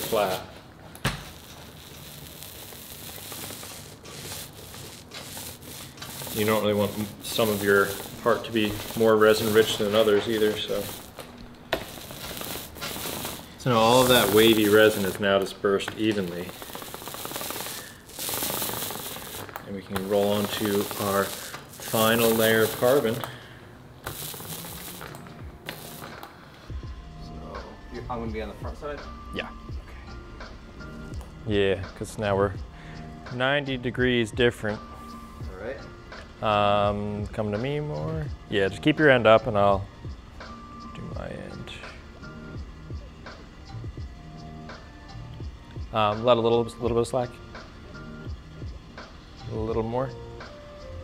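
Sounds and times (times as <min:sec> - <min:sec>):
roller rubbing over wet resin: 0:00.0 - 0:00.6, 0:01.2 - 0:11.2, 0:11.8 - 0:23.3, 0:24.1 - 0:26.2
background music: 0:00.0 - 0:51.0.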